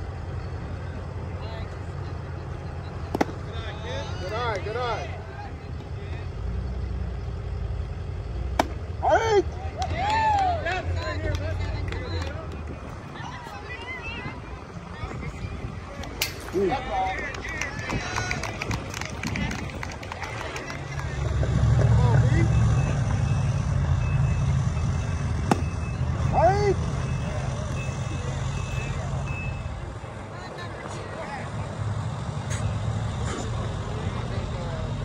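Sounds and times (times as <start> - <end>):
heavy vehicle rumble: 0.0 - 35.0
distant shouts: 2.8 - 6.8, 8.6 - 34.0.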